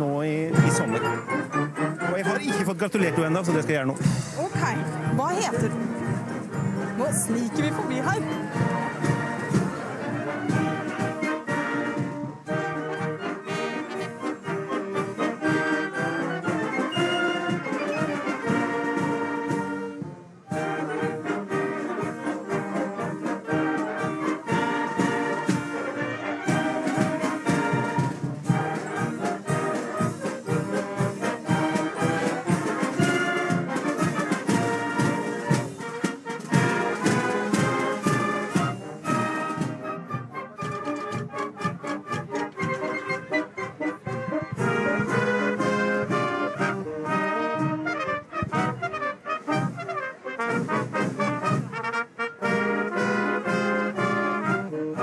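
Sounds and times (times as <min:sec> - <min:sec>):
flutes playing tune: 0:00.0 - 0:55.0
wind band playing: 0:00.0 - 0:55.0.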